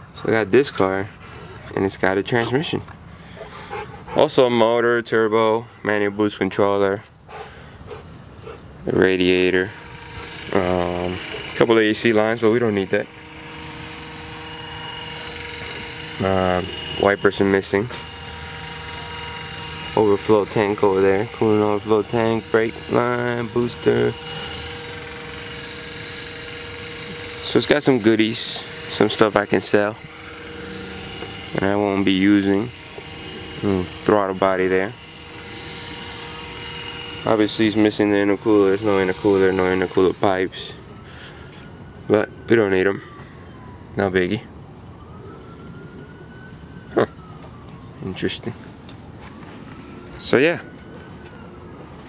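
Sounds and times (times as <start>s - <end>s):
distant siren wailing: 0.0s - 52.0s
mechanical hum with tone: 0.0s - 52.0s.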